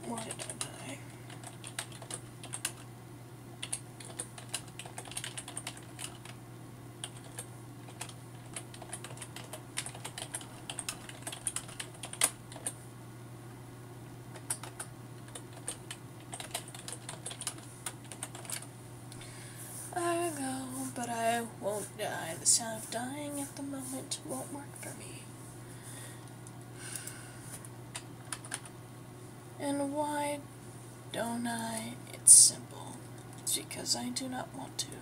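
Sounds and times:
steady low hum: 0.0s - 35.0s
keyboard typing clicks: 1.3s - 2.9s, 3.6s - 6.4s, 7.0s - 12.8s, 14.3s - 18.7s, 27.9s - 28.7s.

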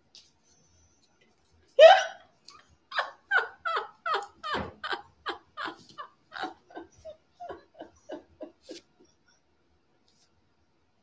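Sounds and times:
woman laughing hard: 2.9s - 8.9s.

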